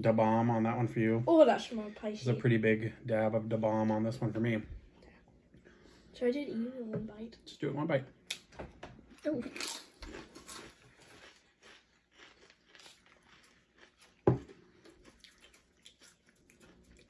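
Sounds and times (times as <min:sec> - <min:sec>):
crunching and chewing snacks: 0:09.1 - 0:17.0.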